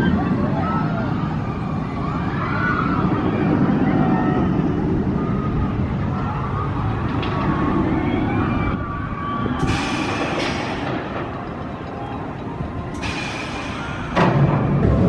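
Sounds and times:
roller coaster rumbling roar: 0.0 - 15.0.

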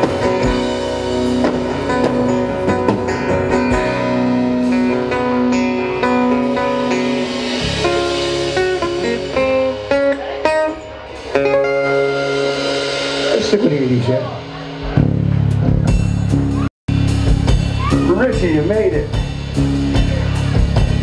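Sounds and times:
acoustic guitar strumming: 0.0 - 16.2
live band playing: 0.0 - 21.0.

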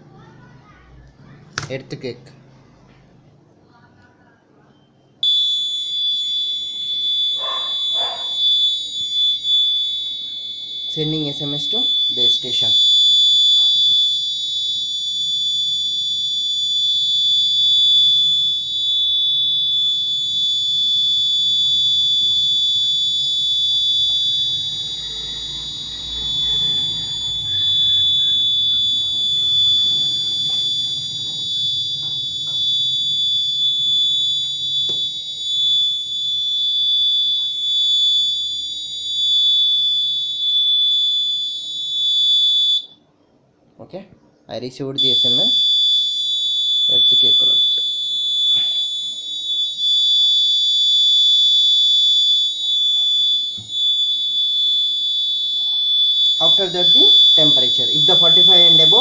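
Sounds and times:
shrill buzzer tone: 4.7 - 43.1, 44.9 - 59.0.

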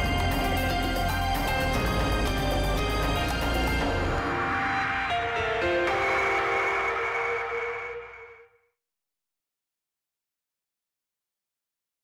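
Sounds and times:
closing theme music: 0.0 - 8.6.

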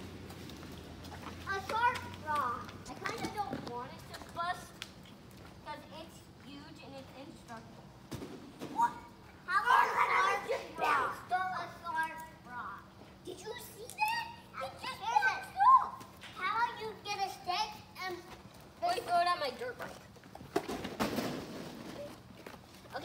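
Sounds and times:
children calling and chattering: 1.2 - 5.0, 8.8 - 19.9.

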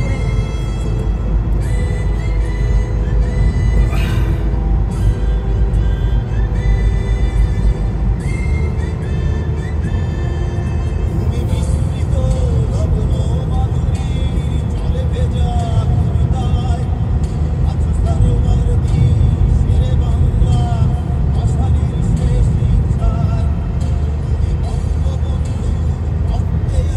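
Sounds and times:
car road and engine rumble: 0.0 - 26.9
faint music: 0.0 - 26.9.

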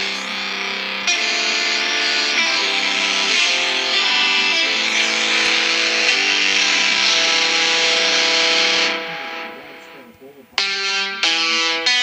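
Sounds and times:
guitar chords strummed on phone speaker: 0.0 - 12.0.

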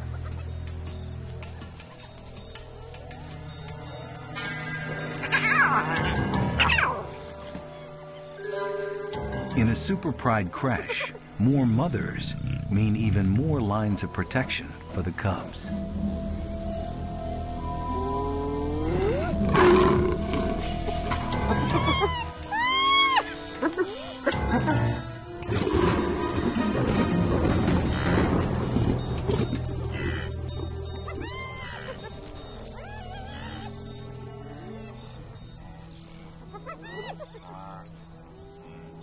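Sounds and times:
background music: 0.0 - 39.0
lion growling: 18.5 - 22.0.

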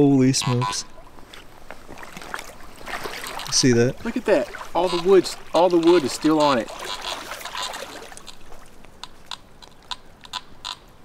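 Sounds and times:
creek trickling: 0.0 - 11.0.

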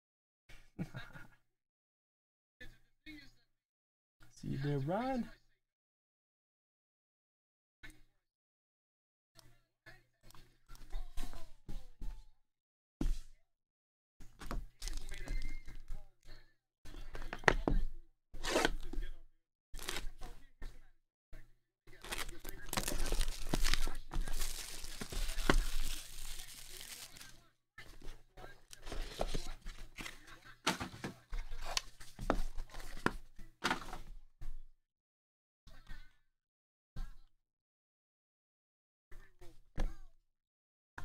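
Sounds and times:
plastic wrapping tearing: 19.8 - 20.1, 22.0 - 27.4.

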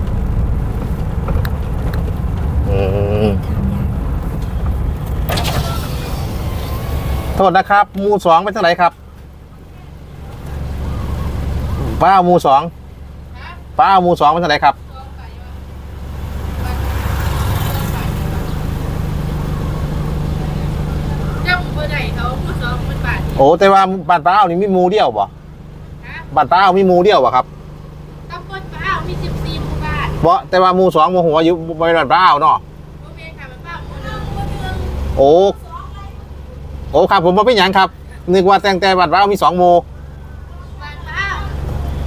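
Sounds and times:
vehicle engine humming: 0.0 - 42.0
man saying oh: 2.6 - 4.0.

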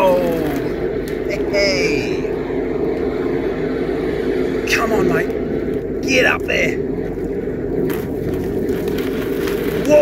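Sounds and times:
hydro jetter running: 0.0 - 10.0.

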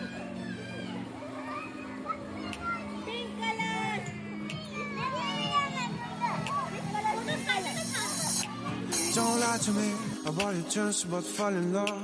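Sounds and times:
children calling out and squealing: 0.0 - 10.6
background song: 3.7 - 12.0.

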